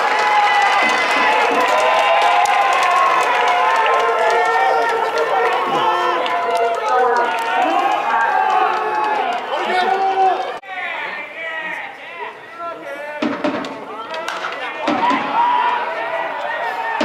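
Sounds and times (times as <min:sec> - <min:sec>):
crowd shouting: 0:00.0 - 0:17.0.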